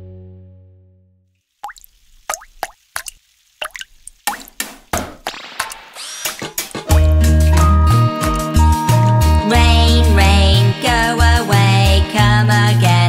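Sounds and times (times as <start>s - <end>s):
children's song music: 5.3s - 13.0s.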